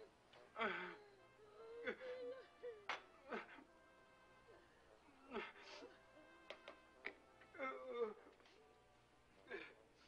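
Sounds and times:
person whimpering: 0.6 - 3.6.

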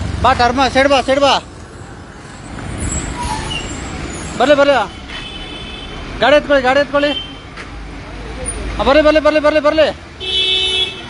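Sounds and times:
motor vehicle noise: 0.0 - 11.0.

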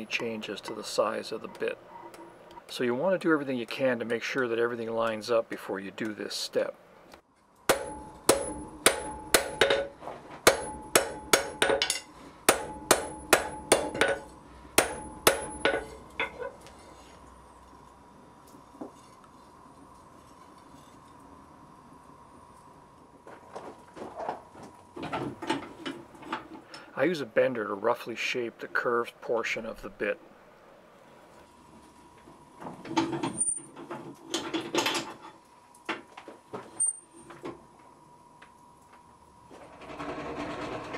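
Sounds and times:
hammer striking iron on anvil: 7.7 - 16.4.

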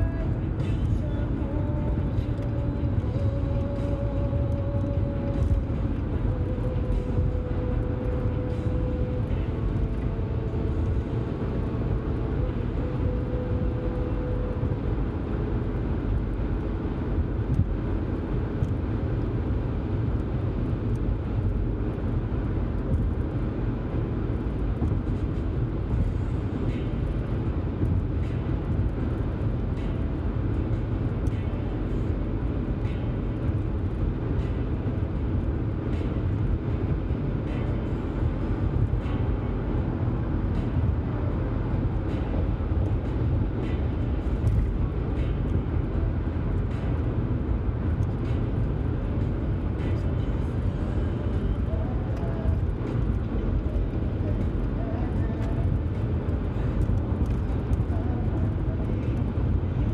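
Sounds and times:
car cabin road noise: 0.0 - 59.9.

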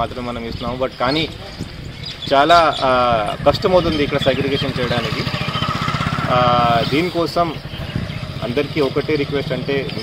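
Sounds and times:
engine idling: 3.2 - 10.0.

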